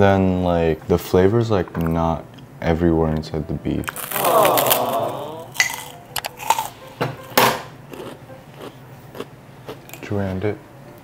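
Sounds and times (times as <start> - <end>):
crunching crisp cracker: 3.9 - 6.8
wordless vocal sound: 4.0 - 5.6.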